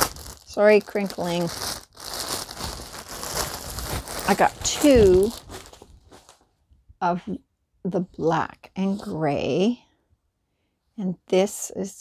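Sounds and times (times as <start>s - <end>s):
bag crinkling: 0.0s - 6.4s.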